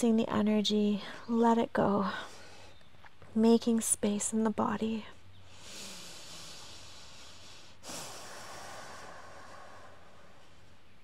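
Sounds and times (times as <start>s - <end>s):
steady background hiss: 0.0s - 11.0s
person exhaling: 5.5s - 10.5s.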